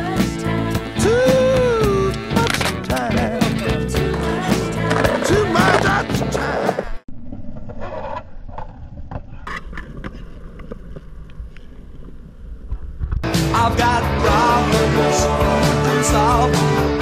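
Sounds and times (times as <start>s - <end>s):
rock song: 0.0s - 7.0s, 13.2s - 17.0s
skateboard wheels rolling on concrete: 1.2s - 13.4s
skateboard clicks and knocks: 4.1s - 13.2s.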